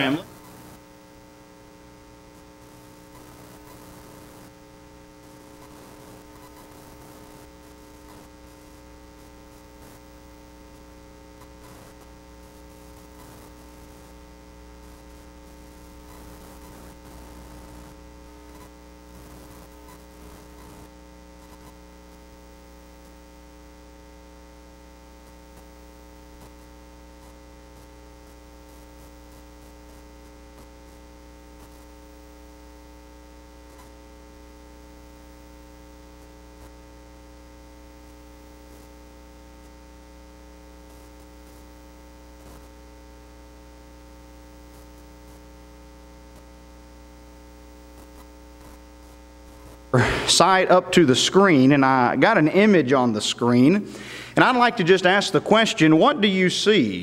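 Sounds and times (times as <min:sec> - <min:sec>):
faint background noise: 0:00.0 - 0:23.2, 0:47.9 - 0:57.0
electrical hum: 0:00.0 - 0:57.0.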